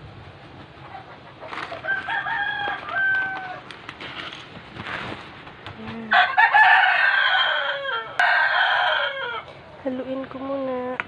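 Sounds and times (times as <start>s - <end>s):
rooster crowing: 1.7s - 3.7s, 6.1s - 9.6s.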